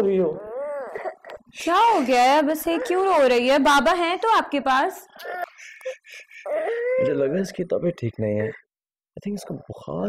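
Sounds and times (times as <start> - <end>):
small child crying: 0.2 - 1.5, 2.6 - 3.3, 6.4 - 7.4.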